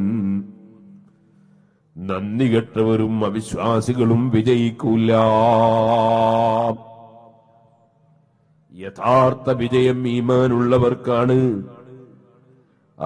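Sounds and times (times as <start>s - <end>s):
man chanting: 0.0s - 1.0s, 2.0s - 7.0s, 8.7s - 12.3s.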